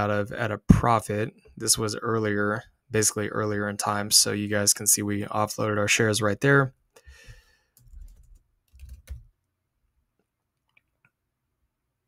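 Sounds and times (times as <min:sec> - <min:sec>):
computer keyboard typing: 0:07.8 - 0:09.3.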